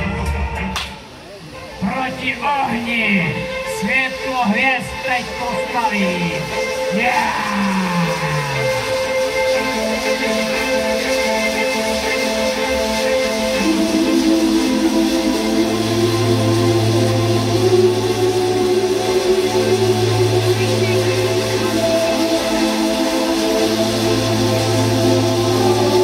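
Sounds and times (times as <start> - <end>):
held synth chords: 0.0 - 26.0
deep sustained bass note: 1.6 - 26.0.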